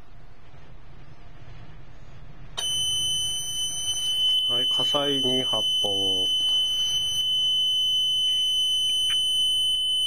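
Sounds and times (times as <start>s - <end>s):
high-pitched electronic alarm tone: 2.6s - 10.0s.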